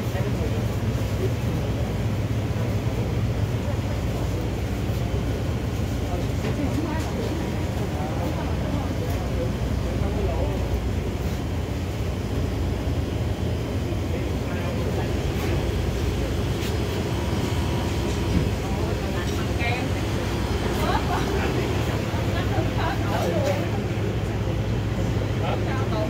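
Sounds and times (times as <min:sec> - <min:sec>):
indistinct voices: 0:00.0 - 0:26.0.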